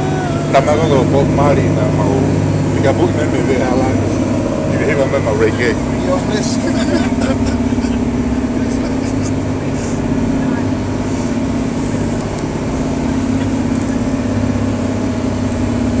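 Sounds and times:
boat engines droning: 0:00.0 - 0:16.0.

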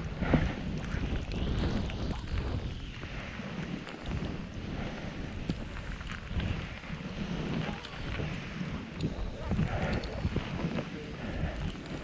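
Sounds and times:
wind buffeting microphone: 0:00.0 - 0:12.0
skis hissing through powder: 0:00.1 - 0:12.0.

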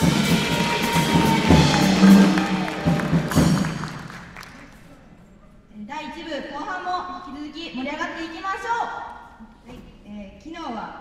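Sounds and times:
drum kit strikes: 0:00.0 - 0:04.1
jazz big band playing: 0:00.0 - 0:04.1.

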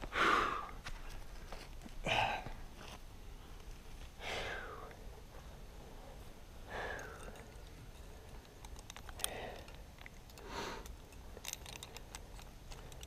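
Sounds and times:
soft breaths: 0:00.0 - 0:13.0
climbing gear metallic clicks: 0:06.9 - 0:13.0.

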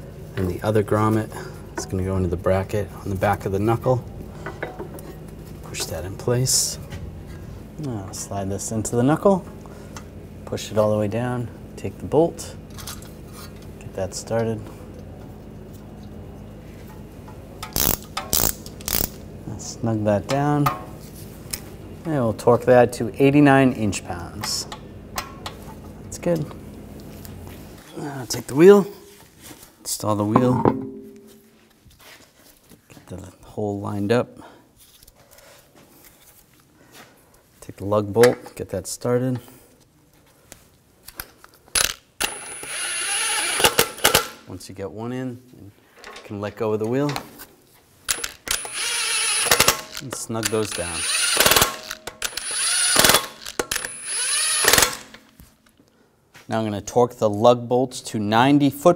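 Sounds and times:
impact wrench whining: 0:17.6 - 0:19.2, 0:41.8 - 0:44.4, 0:48.1 - 0:55.3
ratchet clicking: 0:17.6 - 0:19.2, 0:48.1 - 0:55.2
metal clank: 0:30.4 - 0:31.4.

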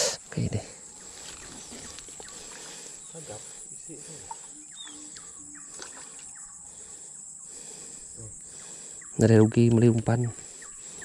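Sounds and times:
chorus of crickets: 0:00.0 - 0:11.0.

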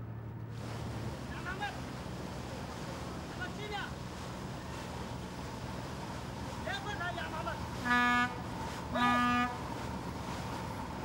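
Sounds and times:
low boat engine hum: 0:00.0 - 0:11.0
boat horn blasts: 0:07.6 - 0:10.0.

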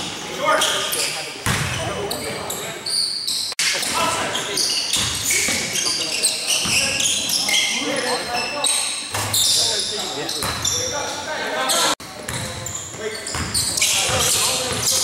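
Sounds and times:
players' voices: 0:00.0 - 0:15.0
sneakers squeaking on court: 0:00.0 - 0:15.0
basketball bouncing: 0:01.4 - 0:01.8.

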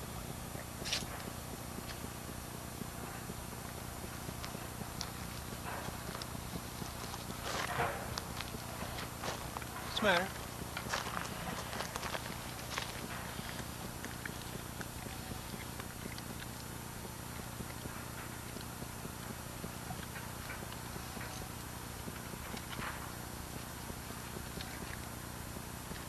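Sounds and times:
camcorder hiss and hum: 0:00.0 - 0:26.0.

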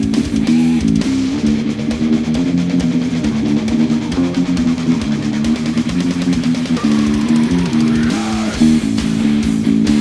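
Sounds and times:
distorted guitar riff: 0:00.0 - 0:10.0
drums: 0:00.0 - 0:10.0
electric bass fingerstyle: 0:00.0 - 0:10.0.

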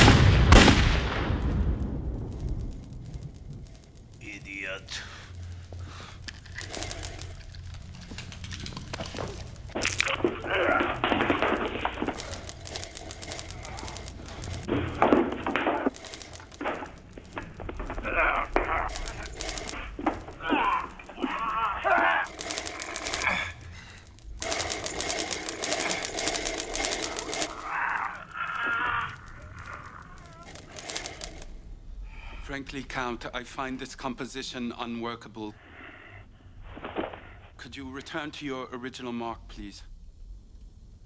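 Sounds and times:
people gasping and groaning: 0:05.1 - 0:08.5, 0:09.8 - 0:32.4.

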